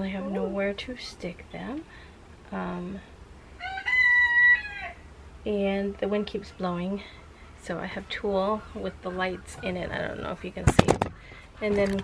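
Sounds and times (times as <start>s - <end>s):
rooster crowing: 3.6s - 5.1s.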